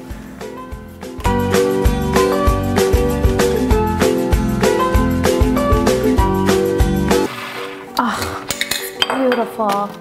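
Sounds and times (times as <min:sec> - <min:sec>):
glass jars clinking: 0:07.6 - 0:09.9.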